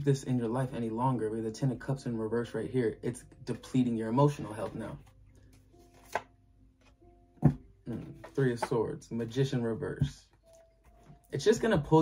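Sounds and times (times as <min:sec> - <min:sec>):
cards being handled: 0:04.2 - 0:09.4
card snapping: 0:05.9 - 0:06.3.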